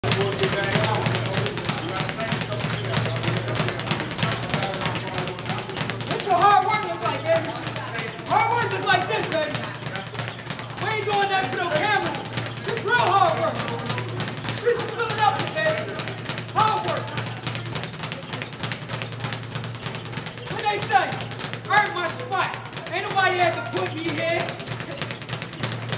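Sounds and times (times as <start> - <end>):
speed bag clattering: 0.0 - 25.9.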